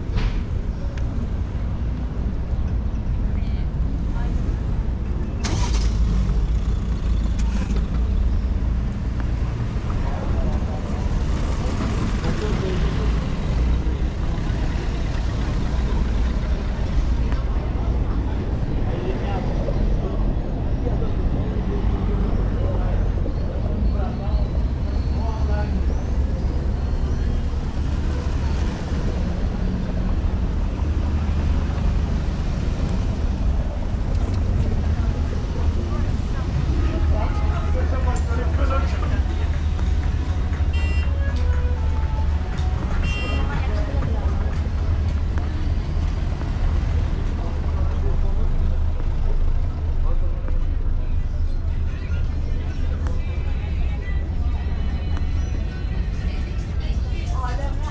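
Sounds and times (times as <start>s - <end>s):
cars passing on cobbled road: 0.0s - 57.9s
low traffic rumble: 0.0s - 57.9s
passers-by talking: 0.0s - 57.9s.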